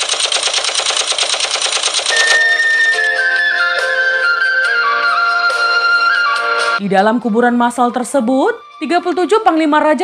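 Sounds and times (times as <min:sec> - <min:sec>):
machine-gun fire: 0:00.0 - 0:02.4
wind instrument melody: 0:02.2 - 0:06.8.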